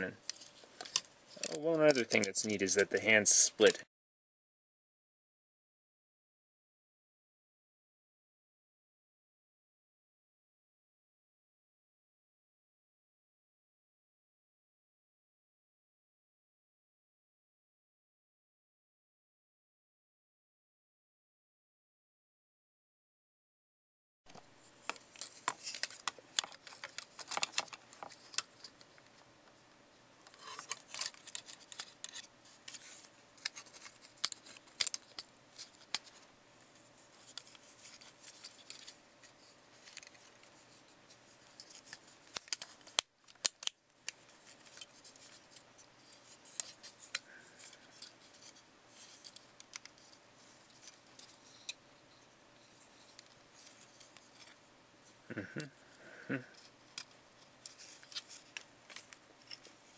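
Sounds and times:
plastic toy parts clicking: 0:24.8 - 0:29.1, 0:30.3 - 0:36.2, 0:37.2 - 0:39.0, 0:39.8 - 0:40.7, 0:41.4 - 0:51.8, 0:56.5 - 0:59.7.

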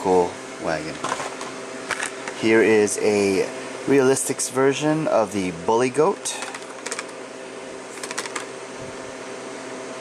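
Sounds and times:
machine-like room hum: 0:00.0 - 0:10.0.

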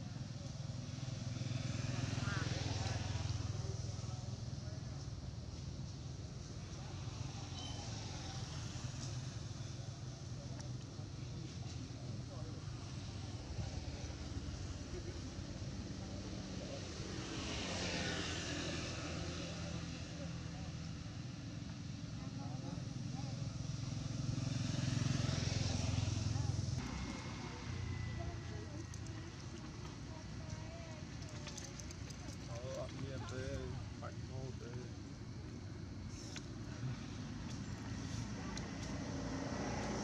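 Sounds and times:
motorcycle engine rumble: 0:00.0 - 0:40.0
engine drone: 0:24.3 - 0:30.4.

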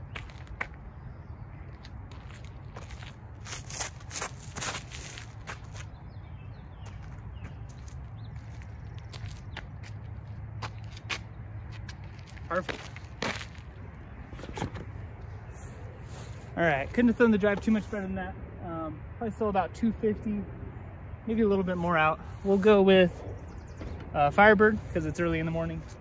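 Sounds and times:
steady low rumble: 0:00.0 - 0:26.0
footsteps scuffing on concrete: 0:01.7 - 0:05.9, 0:06.8 - 0:13.7.

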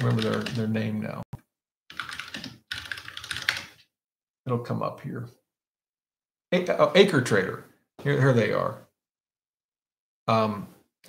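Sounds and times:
typing on computer keyboard: 0:00.0 - 0:00.7, 0:01.9 - 0:03.8.

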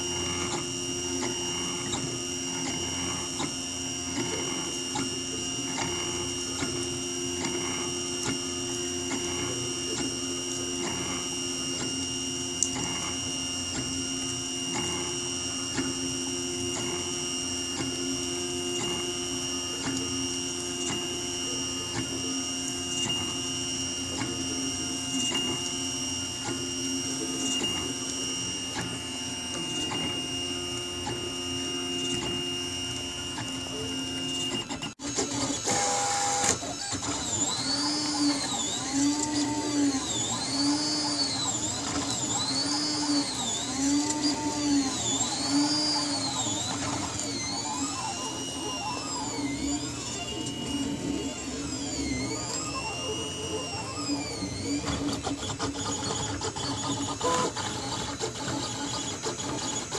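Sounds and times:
printer humming: 0:00.0 - 0:59.9
stepper motors whining: 0:00.0 - 0:59.9.

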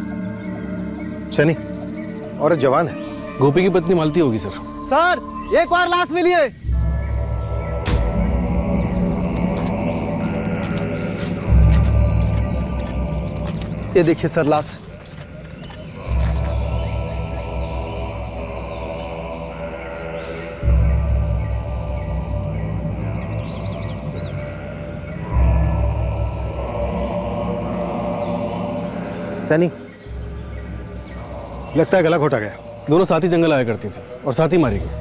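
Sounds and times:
dramatic score with low drones: 0:00.0 - 0:35.0.

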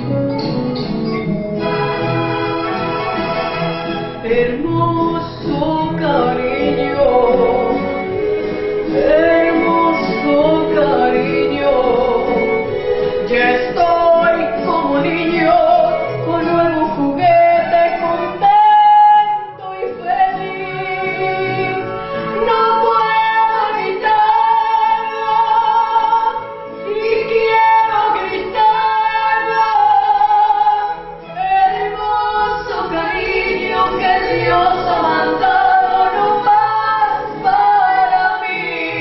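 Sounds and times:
musical accompaniment: 0:00.0 - 0:39.0
woman singing ranchera song: 0:04.2 - 0:39.0.

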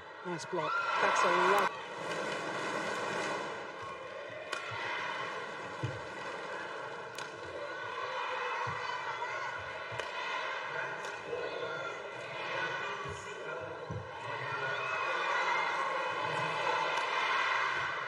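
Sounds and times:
footsteps on court: 0:05.7 - 0:06.4.

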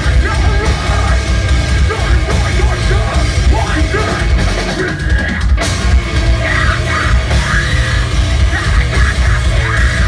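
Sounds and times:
rock band playing loudly: 0:00.0 - 0:10.0.

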